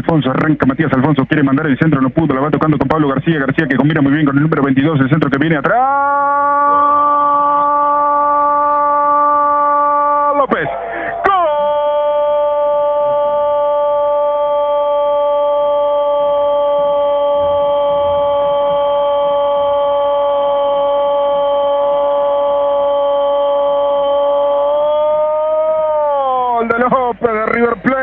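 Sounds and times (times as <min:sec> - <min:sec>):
commentator's drawn-out goal cry: 0:05.6 - 0:15.8.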